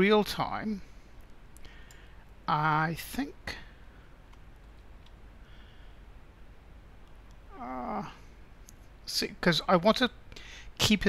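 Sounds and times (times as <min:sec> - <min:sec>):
faint room hiss: 0:00.0 - 0:11.0
short hummed voice: 0:07.5 - 0:08.2.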